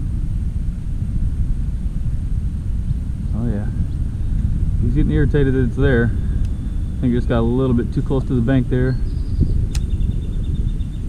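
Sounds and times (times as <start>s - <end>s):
wind buffeting microphone: 0.0s - 11.0s
sharp click: 9.7s - 10.0s.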